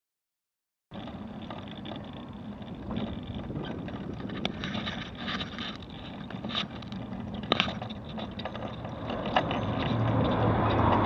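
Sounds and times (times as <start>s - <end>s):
scooter body clicks and rattles: 0.9s - 11.0s
tyre noise on tarmac: 0.9s - 11.0s.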